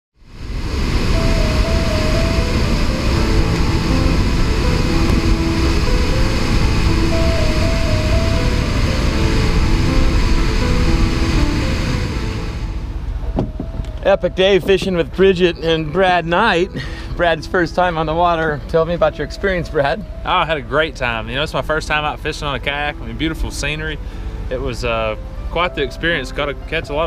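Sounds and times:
loud steady rushing wash: 0:00.2 - 0:27.0
background music with stepped melody: 0:01.1 - 0:27.0.

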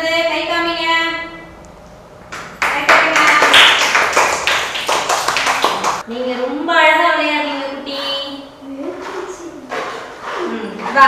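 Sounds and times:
group clapping hands: 0:02.3 - 0:06.0.

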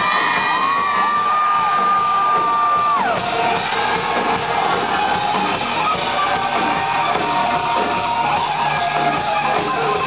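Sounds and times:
crowd cheering and whooping: 0:00.0 - 0:10.0
live rock band playing: 0:00.0 - 0:10.0.

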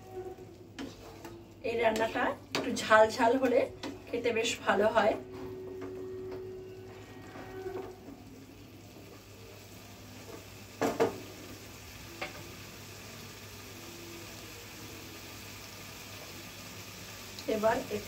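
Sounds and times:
wooden spatula stirring: 0:00.0 - 0:02.9
curry sizzling in a frying pan: 0:00.0 - 0:05.2, 0:06.9 - 0:18.0.

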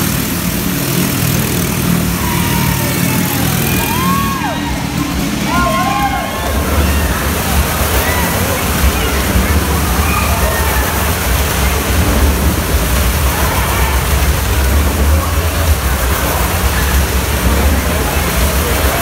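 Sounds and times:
crowd voices: 0:00.0 - 0:19.0
engine rumbling: 0:00.0 - 0:19.0.

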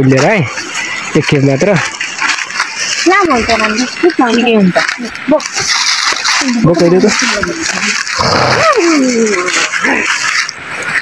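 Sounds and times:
rustling scuffle: 0:00.0 - 0:11.0.

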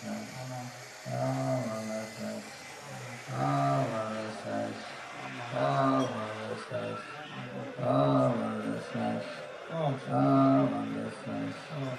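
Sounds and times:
low voice singing held tones: 0:00.0 - 0:11.9.

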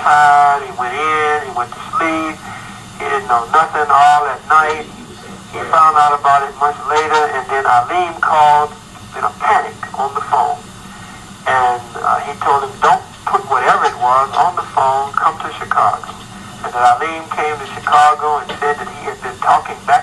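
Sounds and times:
person talking: 0:00.0 - 0:10.6, 0:11.4 - 0:20.0.

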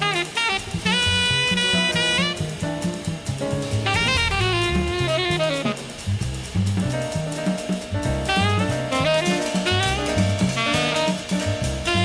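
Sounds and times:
saxophone melody: 0:00.0 - 0:02.9, 0:03.7 - 0:06.2, 0:08.2 - 0:12.0
drum kit with cymbals: 0:00.0 - 0:12.0
low bass notes: 0:00.0 - 0:12.0.

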